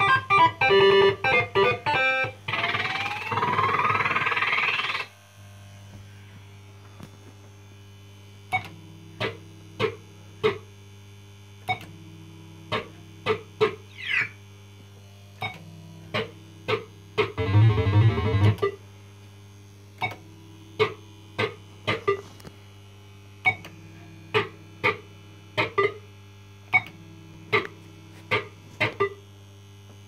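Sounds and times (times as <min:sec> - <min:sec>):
fruit machine hum: 0:00.0 - 0:10.6, 0:11.6 - 0:30.0.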